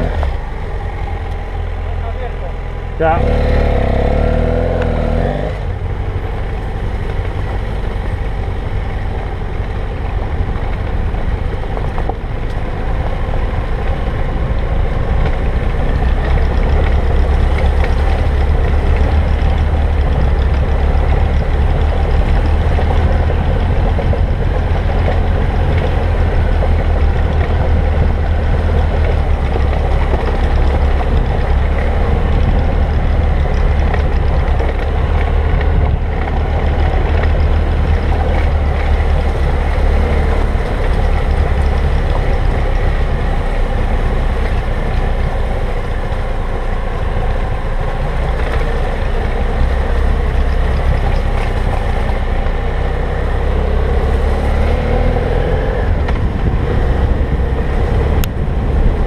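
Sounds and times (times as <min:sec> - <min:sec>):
motorcycle engine running: 0:00.0 - 0:59.0.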